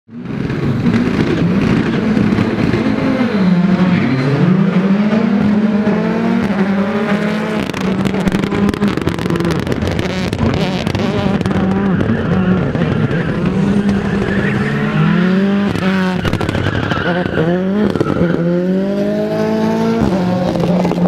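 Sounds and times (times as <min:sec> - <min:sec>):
rally car engine revving: 0:00.1 - 0:21.0
sharp exhaust crackles: 0:06.2 - 0:19.0.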